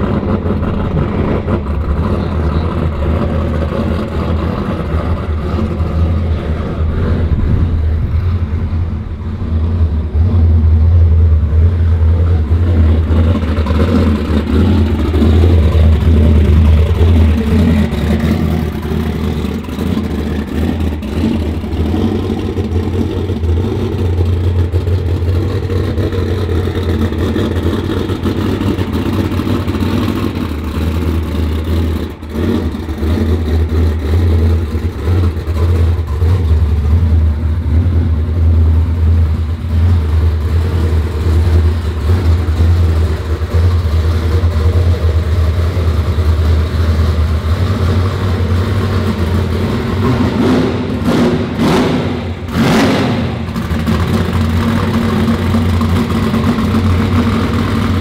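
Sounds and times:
vehicle engine droning: 0:00.0 - 0:58.0.

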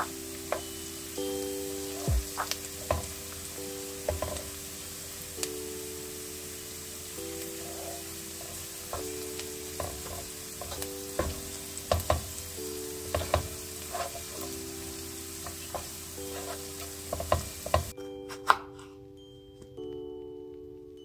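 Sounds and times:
food sizzling in a frying pan: 0:00.0 - 0:17.9
utensil scraping a pan: 0:07.6 - 0:09.2, 0:13.1 - 0:14.6, 0:15.4 - 0:17.9.

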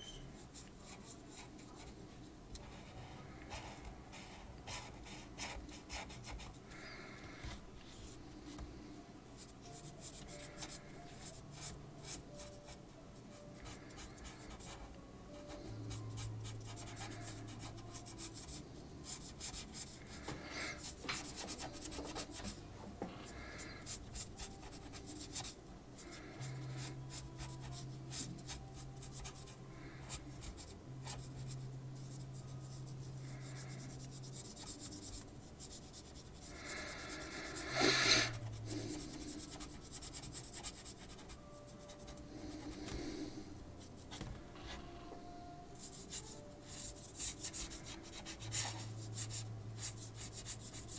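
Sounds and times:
marker rubbing on paper: 0:13.6 - 0:22.6, 0:23.3 - 0:29.5, 0:30.1 - 0:43.1, 0:45.8 - 0:50.9.

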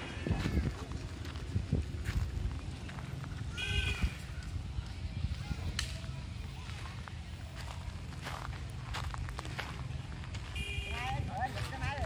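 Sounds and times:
footsteps on gravel: 0:00.0 - 0:12.0
voices: 0:00.0 - 0:12.0.

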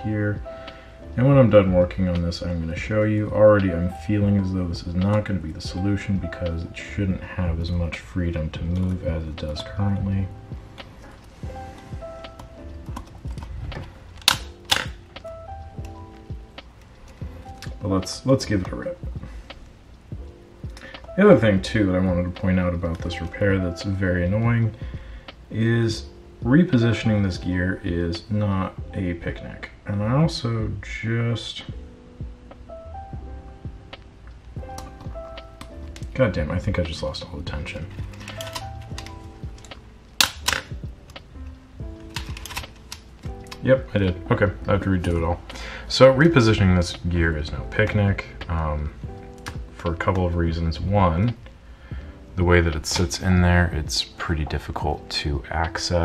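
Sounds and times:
soft background music: 0:00.0 - 0:56.0
clicks of camera mechanism: 0:38.1 - 0:41.2, 0:42.0 - 0:43.6.

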